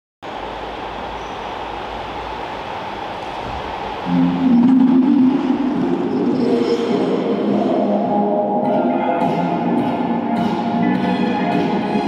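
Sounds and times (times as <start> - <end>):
rumble and hiss of ice rink hall: 0.2 - 12.0.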